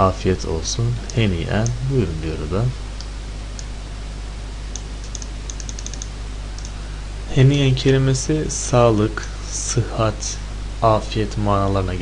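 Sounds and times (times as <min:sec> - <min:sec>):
recording hiss and hum: 0:00.0 - 0:12.0
computer keyboard clicks: 0:04.8 - 0:06.8.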